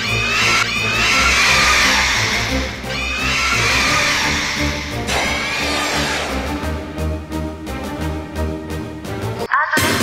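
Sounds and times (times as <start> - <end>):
monster shrieking cry: 0.0 - 6.6.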